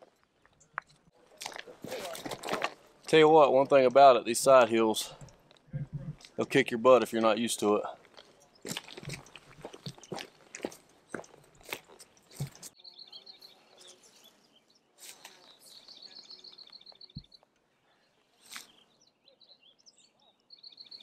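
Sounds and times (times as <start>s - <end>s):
footsteps crunching through dry sticks: 0.0s - 2.9s, 8.0s - 12.8s.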